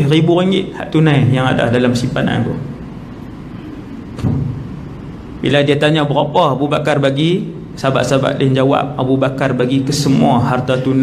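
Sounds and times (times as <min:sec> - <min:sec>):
low hum of room tone: 0:00.0 - 0:11.0.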